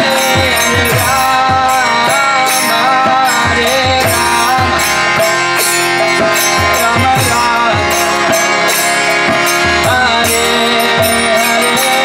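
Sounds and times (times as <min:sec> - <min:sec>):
harmonium chords: 0:00.0 - 0:12.0.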